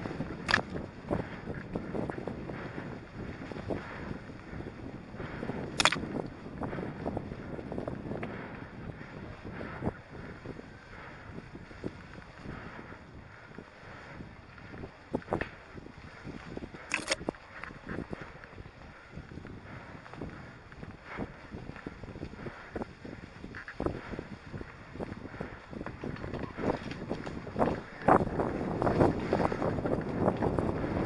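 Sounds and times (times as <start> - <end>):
bike rattles and knocks: 0.0 - 4.3, 5.5 - 6.8, 19.2 - 31.0
bike rolling over leaves and twigs: 0.0 - 31.0.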